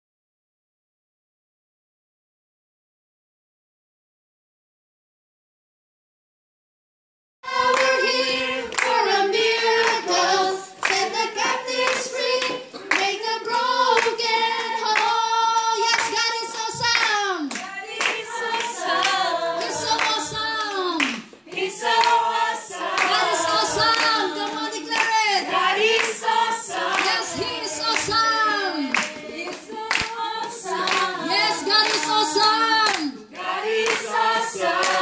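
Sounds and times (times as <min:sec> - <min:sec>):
hands clapping: 0:07.5 - 0:35.0.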